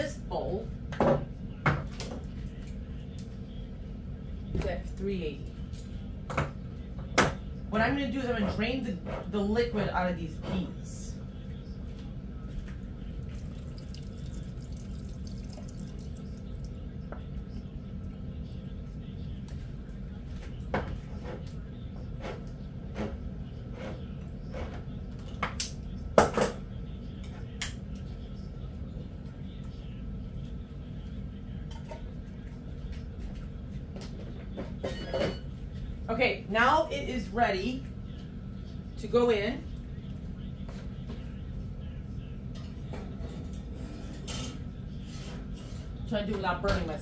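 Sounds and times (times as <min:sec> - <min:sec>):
steady low hum: 0:00.0 - 0:47.0.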